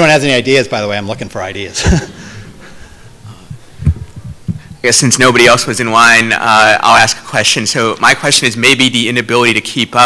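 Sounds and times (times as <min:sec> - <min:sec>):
man speaking: 0:00.0 - 0:10.0
soft dull low thumps: 0:01.9 - 0:04.8.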